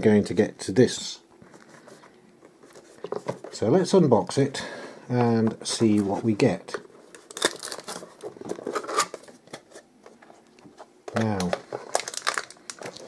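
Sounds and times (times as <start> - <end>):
packaging crinkling and tearing: 7.1 - 9.8, 11.1 - 13.0.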